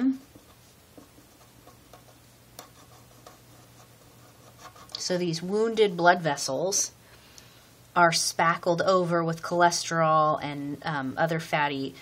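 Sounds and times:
marker scratching on paper: 0:00.4 - 0:05.0.

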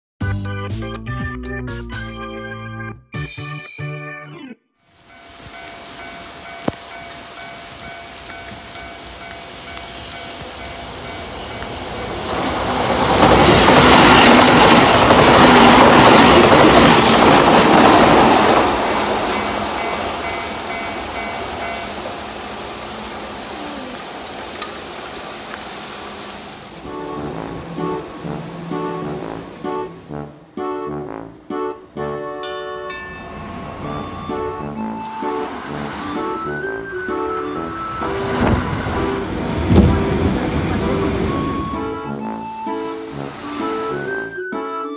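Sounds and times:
background music: 0:00.2 - 0:04.6, 0:26.8 - 0:44.9
electric train passing: 0:04.9 - 0:44.9.

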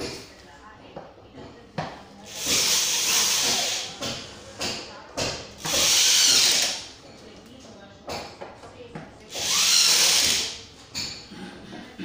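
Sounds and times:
electric drill driving screw: 0:02.3 - 0:03.9, 0:05.6 - 0:06.9, 0:09.3 - 0:10.6.

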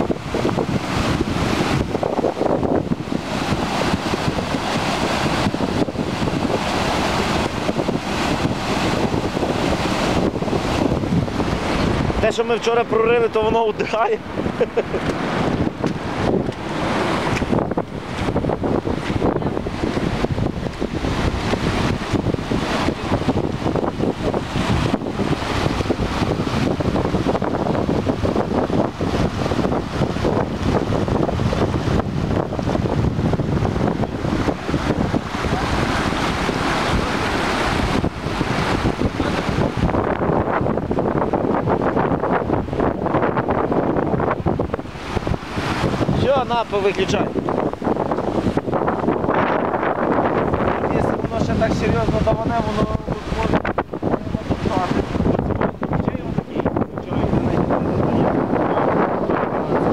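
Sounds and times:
floodwater rushing: 0:00.0 - 0:59.9
wind buffeting microphone: 0:00.0 - 0:59.9.

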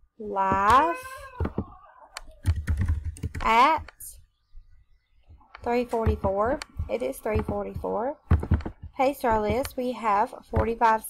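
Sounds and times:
typing on computer keyboard: 0:02.4 - 0:03.5.

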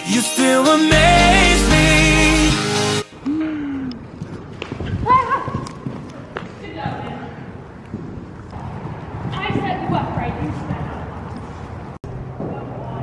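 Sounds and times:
horse hoofbeats on dirt: 0:07.9 - 0:11.6.

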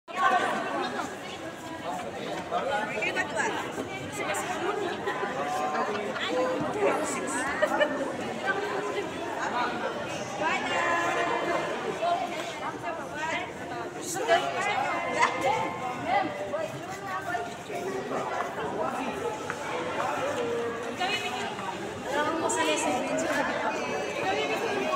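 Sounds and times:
overlapping conversational chatter: 0:00.1 - 0:24.9.

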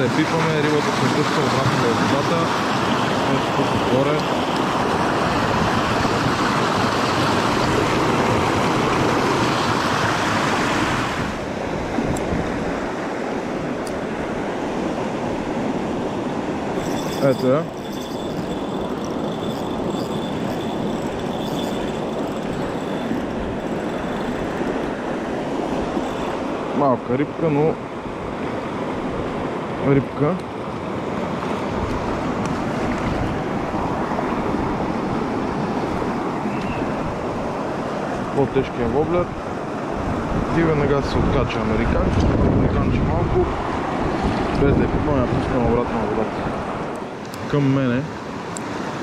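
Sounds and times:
white water rushing over rocks: 0:00.0 - 0:29.5
shallow water flowing: 0:00.0 - 0:29.8.

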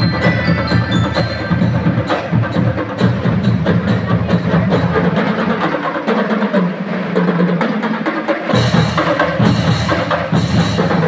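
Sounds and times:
marching band playing: 0:00.0 - 0:11.0.

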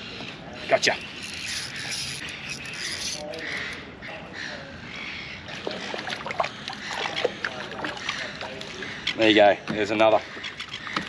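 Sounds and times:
spinning reel winding: 0:00.9 - 0:03.7
sharp clicks of reel and rod: 0:00.9 - 0:03.8.

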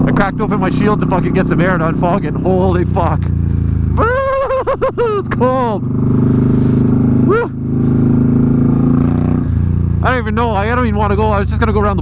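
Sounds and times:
motorcycle engine running: 0:00.0 - 0:12.0
short rising voice-like cry: 0:07.3 - 0:07.6.

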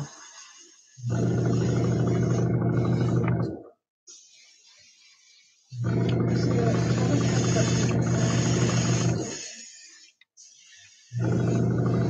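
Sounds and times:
airbrush spraying hiss: 0:00.0 - 0:01.0, 0:04.1 - 0:05.8, 0:06.6 - 0:11.2
airbrush compressor motor humming: 0:00.0 - 0:03.5, 0:04.1 - 0:12.0.

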